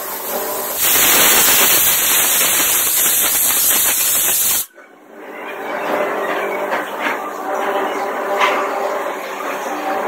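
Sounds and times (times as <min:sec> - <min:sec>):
pressure cooker steam hissing: 0:00.0 - 0:04.7.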